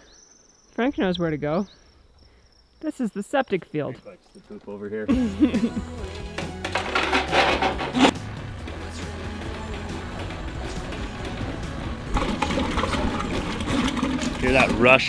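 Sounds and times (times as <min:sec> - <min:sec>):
background music: 0:05.1 - 0:15.0
drain-cleaning machine motor: 0:06.1 - 0:15.0.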